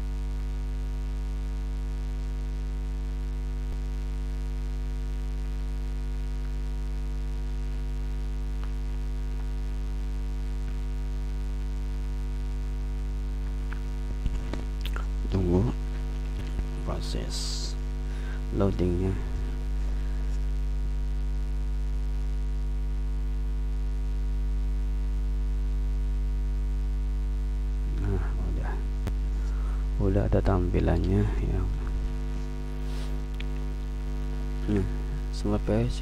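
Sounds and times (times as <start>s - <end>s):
electrical mains hum: 0.0s - 36.0s
wordless vocal sound: 27.9s - 33.6s, 34.6s - 36.0s.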